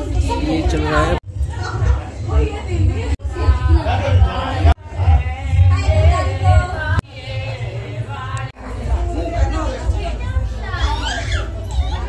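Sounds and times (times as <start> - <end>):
high-pitched voices chattering: 0.0 - 12.0.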